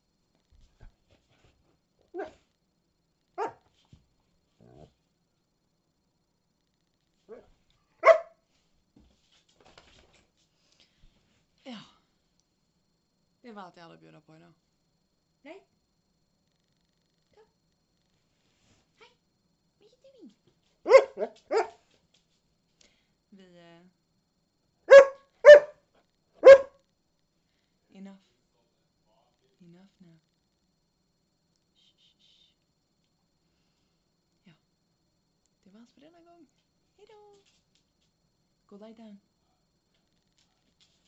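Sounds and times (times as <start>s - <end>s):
faint dog vocal sound: 0.7s - 2.5s, 4.5s - 5.0s, 20.9s - 21.8s
dog barking: 2.2s - 2.4s, 3.4s - 3.6s, 7.3s - 8.4s, 20.9s - 21.8s, 24.9s - 25.8s, 26.4s - 26.8s.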